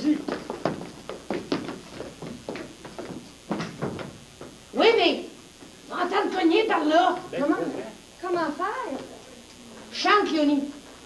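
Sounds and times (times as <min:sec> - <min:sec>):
footsteps on stage floor: 0:00.0 - 0:04.7.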